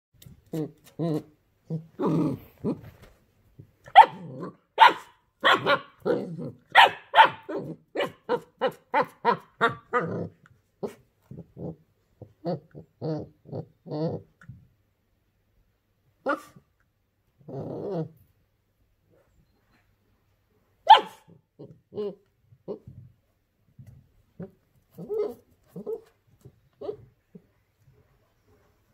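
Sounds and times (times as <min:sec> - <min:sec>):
puppy growling low: 0:00.5 - 0:03.0, 0:04.1 - 0:04.6, 0:06.0 - 0:06.7, 0:09.6 - 0:14.6, 0:17.4 - 0:18.3, 0:21.6 - 0:23.1, 0:24.4 - 0:27.5
puppy yipping: 0:03.9 - 0:06.0, 0:06.7 - 0:10.0, 0:20.9 - 0:21.3
puppy barking: 0:03.9 - 0:10.1, 0:16.2 - 0:16.6, 0:20.8 - 0:21.4.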